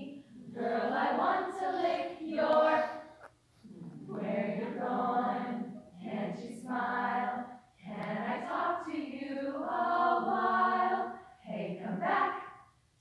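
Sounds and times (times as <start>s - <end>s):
women's choir singing: 0.0s - 3.1s, 3.7s - 12.7s.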